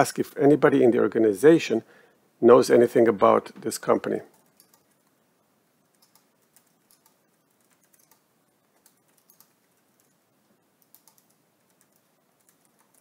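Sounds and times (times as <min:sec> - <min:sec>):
typing on computer keyboard: 0:04.3 - 0:05.1, 0:05.9 - 0:10.2, 0:10.8 - 0:13.0.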